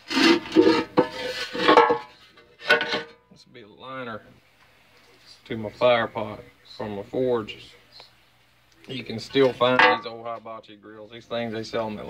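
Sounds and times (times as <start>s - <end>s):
metal scraping and clattering: 0.0s - 3.2s, 9.6s - 10.2s.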